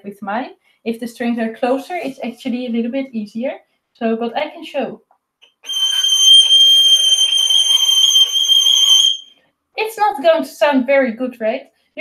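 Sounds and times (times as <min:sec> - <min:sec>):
violin high note: 0:05.7 - 0:09.2.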